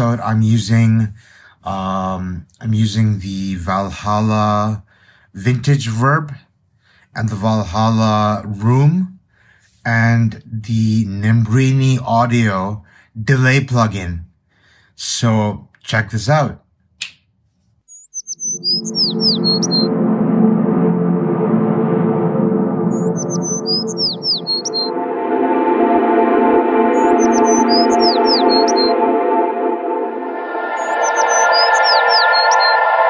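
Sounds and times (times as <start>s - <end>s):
birds chirping: 17.9s - 20.0s, 22.9s - 24.9s, 26.9s - 29.3s, 30.6s - 33.0s
ambient music drone: 18.4s - 33.0s.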